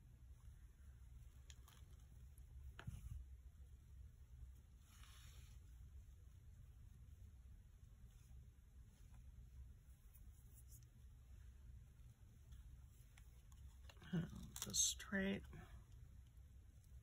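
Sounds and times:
low steady hum: 0:00.0 - 0:17.0
soft rustle: 0:00.0 - 0:17.0.

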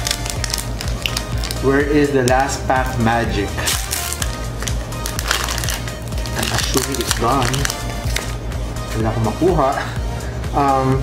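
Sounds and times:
foil wrapper crinkling: 0:00.0 - 0:01.7, 0:03.6 - 0:08.4
background music with bass line: 0:00.0 - 0:11.0.

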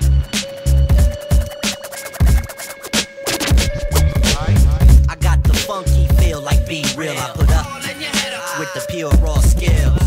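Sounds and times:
heavy kick drum: 0:03.6 - 0:06.6
rapping over a beat: 0:03.6 - 0:10.0.

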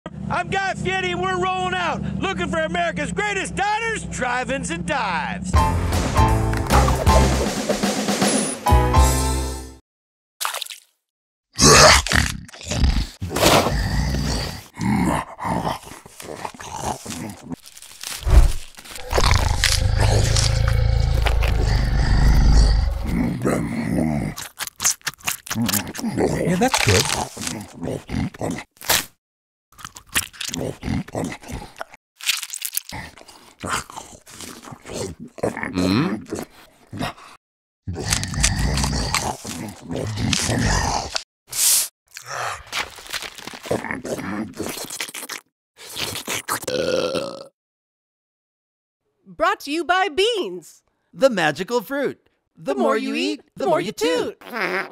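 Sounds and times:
man grunting while eating: 0:11.6 - 0:17.6, 0:19.0 - 0:24.4, 0:25.5 - 0:28.7, 0:30.4 - 0:32.0, 0:32.9 - 0:41.2, 0:42.1 - 0:45.0, 0:46.6 - 0:47.5, 0:52.8 - 0:54.9
faint mouth sound: 0:43.4 - 0:47.3.

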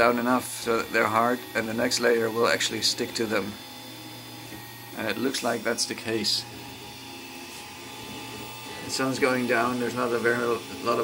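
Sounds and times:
printer fan and motors whirring: 0:00.0 - 0:11.0.

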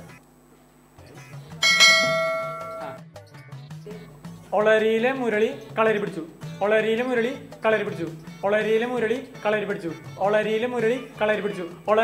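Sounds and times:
bell ringing: 0:01.6 - 0:03.0.

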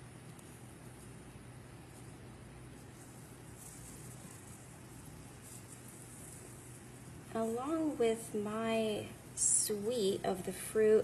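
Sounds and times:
faint steady hiss: 0:00.0 - 0:11.0
low electrical hum: 0:00.0 - 0:11.0.

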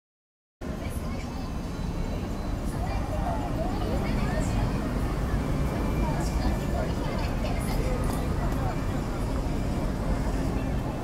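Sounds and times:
indistinct crowd chatter: 0:00.6 - 0:11.0
low traffic rumble: 0:00.6 - 0:11.0.

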